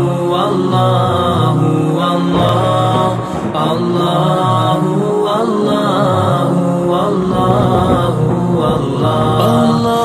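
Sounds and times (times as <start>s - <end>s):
voices chanting: 0.0s - 10.0s.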